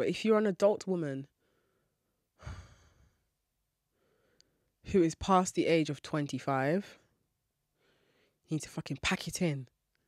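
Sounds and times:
woman sighing: 2.4 - 3.2.

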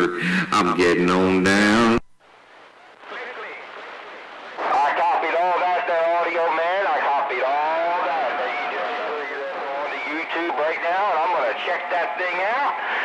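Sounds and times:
tinny voice over cb radio: 3.0 - 13.0.

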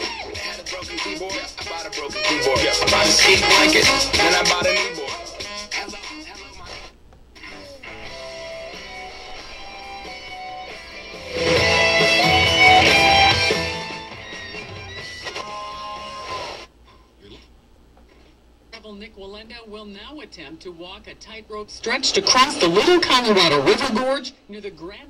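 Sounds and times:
guitar music from radio: 0.0 - 16.7.

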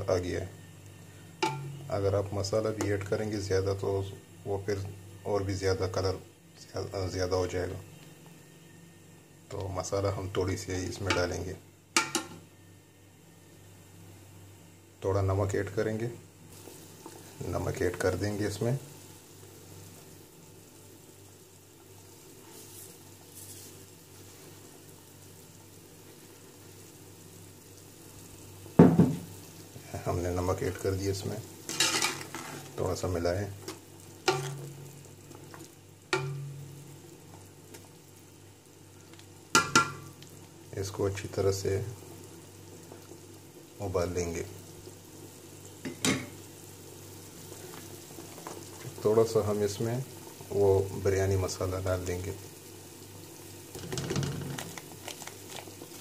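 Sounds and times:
food sizzling in oil: 0.0 - 56.0
broth bubbling at a boil: 33.8 - 56.0.

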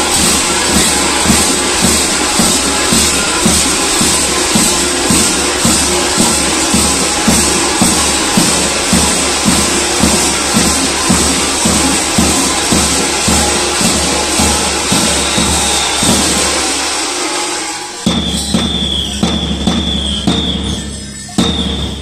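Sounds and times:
thin high note: 0.0 - 19.2
bells clanging and jangling: 0.0 - 22.0
large drum beat: 0.0 - 22.0.

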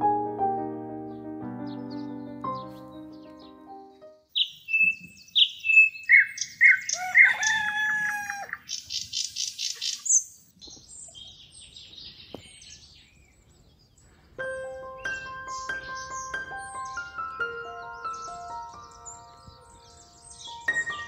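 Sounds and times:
songbirds singing: 1.1 - 3.6, 4.3 - 21.0
rooster crowing: 6.6 - 8.6.

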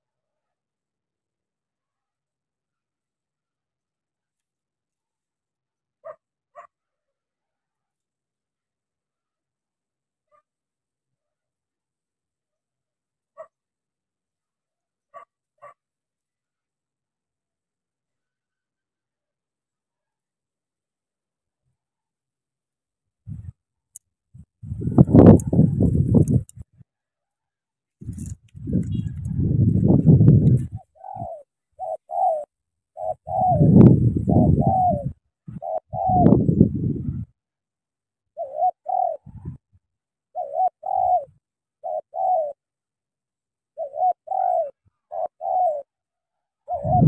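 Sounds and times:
doves cooing: 24.8 - 26.6, 28.1 - 36.6, 38.4 - 39.6, 40.3 - 42.6, 43.8 - 45.9, 46.7 - 47.0.

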